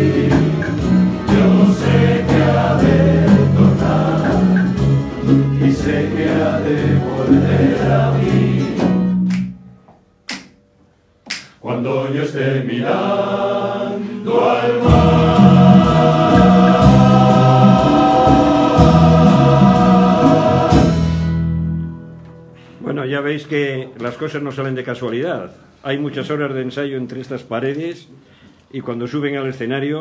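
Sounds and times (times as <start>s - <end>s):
male choir singing in chords: 0.0s - 9.1s, 11.6s - 21.5s
strummed lutes and guitars: 0.0s - 9.3s.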